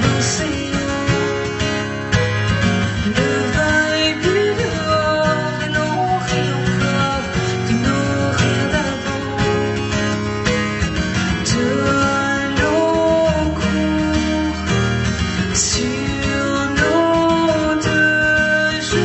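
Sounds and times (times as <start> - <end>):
woman singing: 0.0 - 1.6, 3.1 - 9.9, 11.4 - 14.7, 15.5 - 19.0
acoustic guitar strumming: 0.0 - 19.0.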